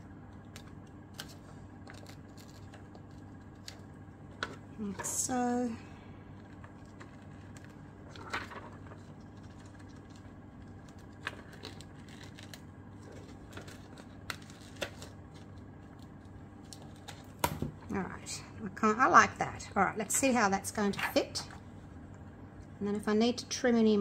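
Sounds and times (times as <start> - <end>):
faint steady hum: 0.0 - 24.0
paper rustling: 6.4 - 17.4.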